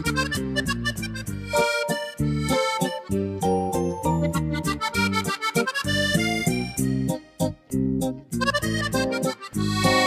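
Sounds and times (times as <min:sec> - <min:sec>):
accordion tune: 0:00.0 - 0:10.0.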